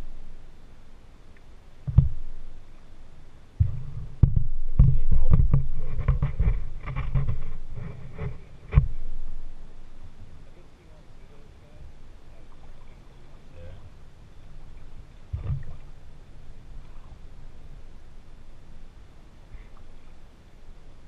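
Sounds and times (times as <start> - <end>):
low thumps and knocks on kayak hull: 1.8 - 2.4, 3.6 - 9.4, 15.3 - 15.9.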